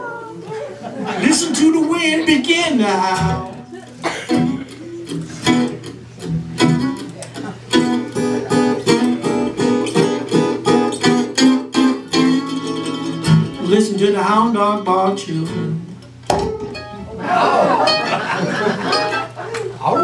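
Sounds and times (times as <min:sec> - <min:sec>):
mandolin: 0:00.0 - 0:20.0
acoustic guitar: 0:01.1 - 0:20.0.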